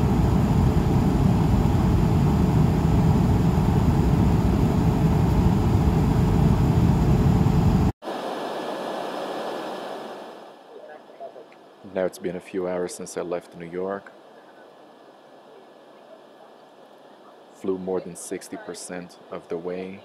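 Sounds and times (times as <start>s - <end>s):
jet engines and airflow roar: 0.0s - 17.9s.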